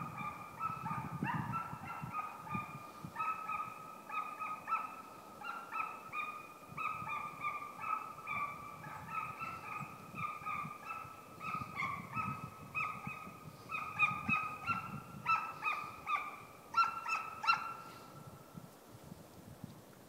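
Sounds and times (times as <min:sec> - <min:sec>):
hound baying: 0:00.2 - 0:17.8.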